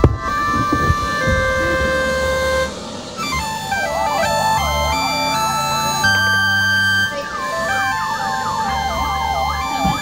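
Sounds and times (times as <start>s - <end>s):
electronic synth music: 0.0s - 10.0s.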